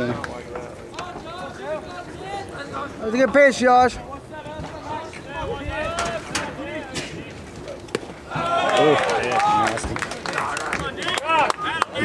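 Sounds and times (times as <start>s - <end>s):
spectators chattering and calling out: 0.0s - 12.0s.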